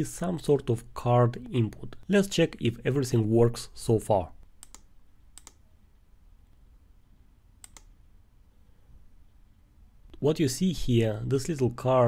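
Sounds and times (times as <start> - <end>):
computer mouse clicks: 4.6 - 5.6, 7.6 - 8.0.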